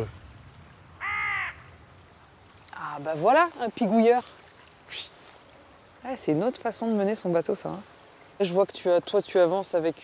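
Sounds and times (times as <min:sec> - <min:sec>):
rook cawing: 0:01.0 - 0:01.8.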